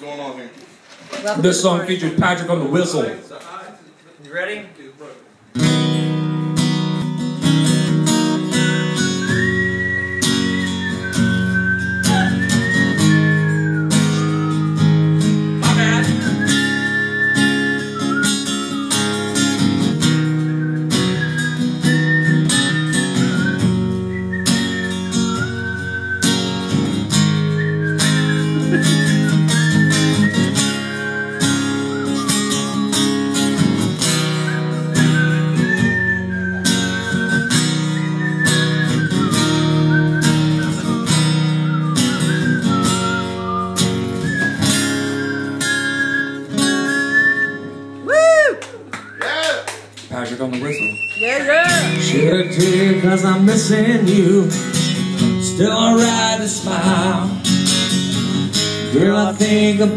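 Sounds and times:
acoustic guitar strumming: 5.5 - 48.1, 51.3 - 59.9
man whistling: 8.1 - 33.4, 34.0 - 49.6, 50.7 - 59.9.

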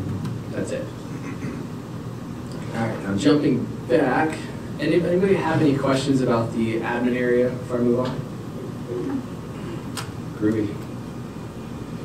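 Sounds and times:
faint low murmurs: 0.0 - 10.9.

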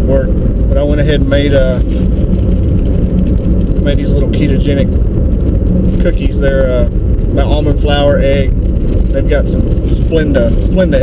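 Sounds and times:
man talking: 0.0 - 1.8, 3.8 - 4.9, 6.0 - 8.5, 9.1 - 11.0
car cabin road rumble: 0.0 - 11.0.

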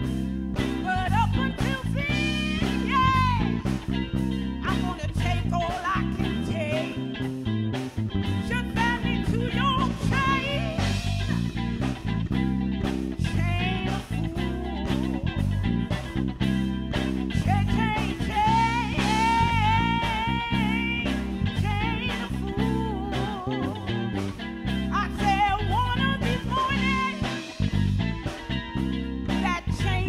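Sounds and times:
electric bass and guitar: 0.0 - 30.0
woman singing: 0.6 - 3.8, 4.6 - 7.2, 8.4 - 11.3, 13.2 - 15.4, 17.3 - 27.6, 29.3 - 30.0.

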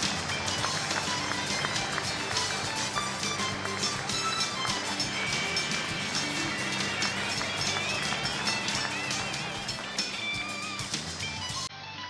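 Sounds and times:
crowd applauding: 0.0 - 11.7
music with sustained notes: 0.0 - 12.0.

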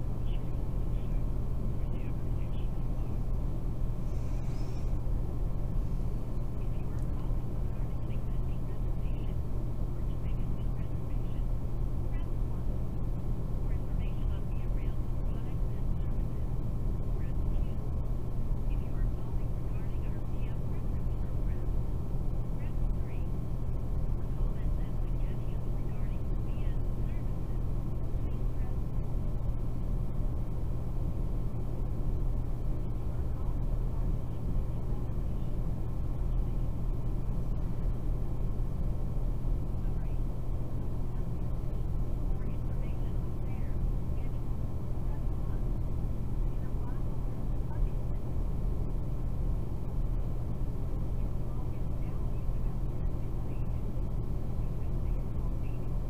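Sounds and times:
steady low hum: 0.0 - 56.0
faint indistinct voices: 5.8 - 29.5, 39.5 - 48.9.

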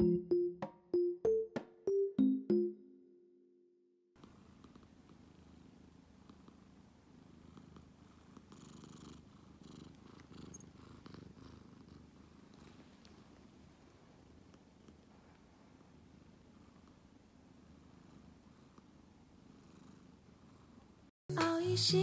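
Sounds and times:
cat purring: 4.2 - 21.1.

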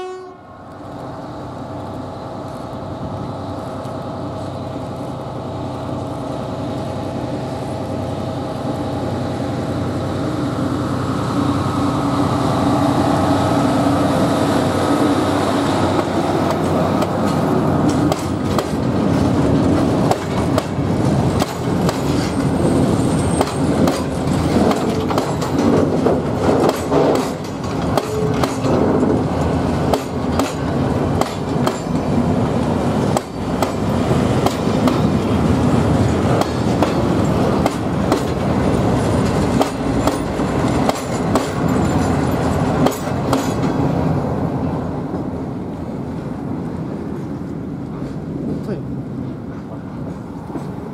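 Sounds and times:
train wheels rumbling: 0.0 - 50.9
wheels clicking over rail joints: 16.0 - 32.4, 33.0 - 43.8.

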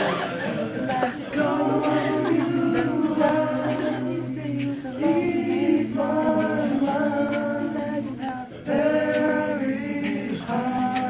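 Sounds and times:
a cappella choir singing: 0.0 - 11.0.

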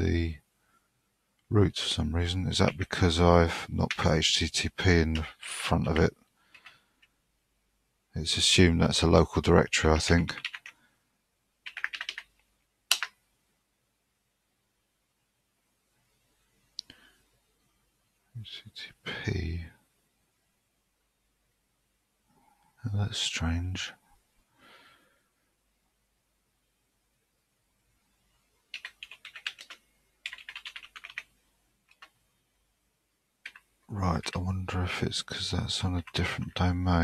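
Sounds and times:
computer keyboard keystrokes: 6.5 - 6.7, 10.4 - 10.7, 11.6 - 13.2, 28.7 - 31.3, 31.9 - 32.2, 33.4 - 33.7.

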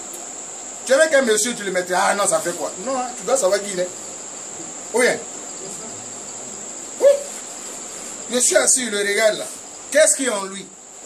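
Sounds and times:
faint background hiss: 0.0 - 11.0
high-pitched insect trill: 0.0 - 11.0.

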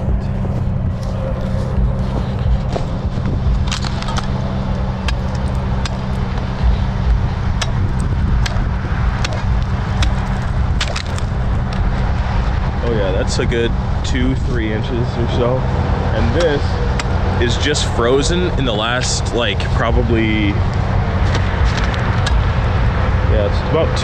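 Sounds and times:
steady low rumble: 0.0 - 24.0.

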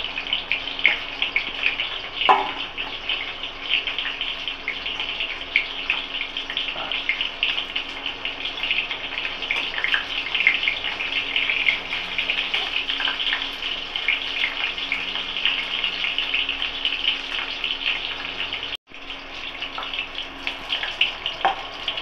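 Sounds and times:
food sizzling in hot oil: 0.0 - 22.0.

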